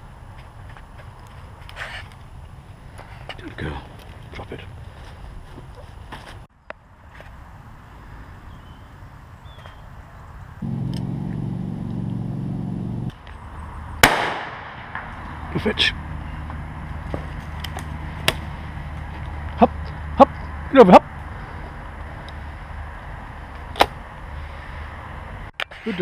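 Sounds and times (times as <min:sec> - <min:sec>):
steady low hum: 0:10.6 - 0:23.4
shotgun shot: 0:14.0 - 0:15.1.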